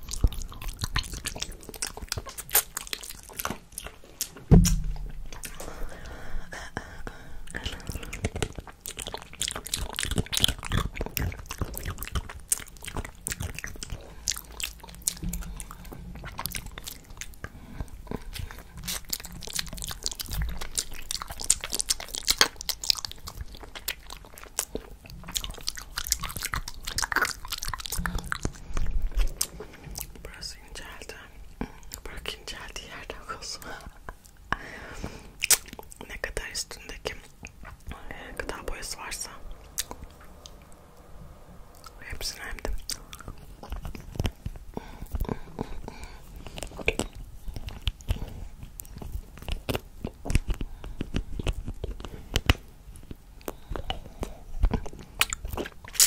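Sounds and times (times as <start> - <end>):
licking and sucking candy: 0.0 - 56.0.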